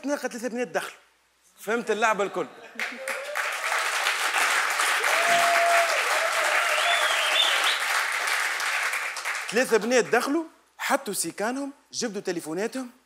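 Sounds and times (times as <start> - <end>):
audience applauding: 2.8 - 10.0.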